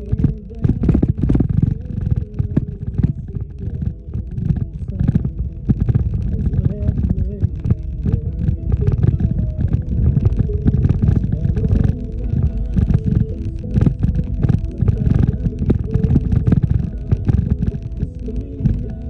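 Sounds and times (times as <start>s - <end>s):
vehicle cabin rumble: 0.0s - 19.0s.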